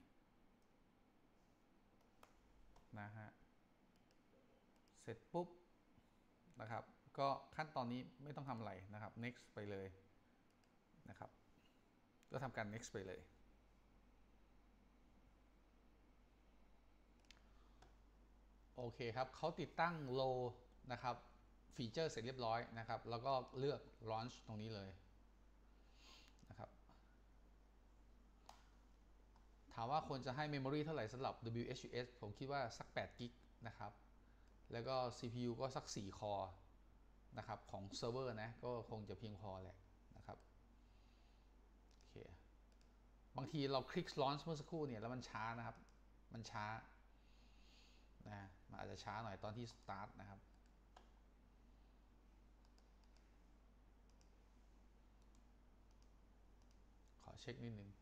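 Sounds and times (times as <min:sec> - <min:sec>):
computer mouse clicks: 0:02.0 - 0:02.9, 0:03.9 - 0:05.0, 0:10.4 - 0:10.8, 0:17.2 - 0:18.0, 0:28.4 - 0:29.5, 0:41.8 - 0:43.0, 0:45.7 - 0:46.0, 0:50.5 - 0:51.2, 0:52.6 - 0:53.4, 0:54.0 - 0:54.4, 0:55.2 - 0:57.2.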